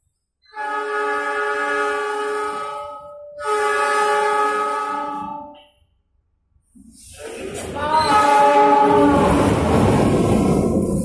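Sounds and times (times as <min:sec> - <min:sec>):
locomotive air horn blasts: 0:00.5 - 0:05.7, 0:08.1 - 0:09.5.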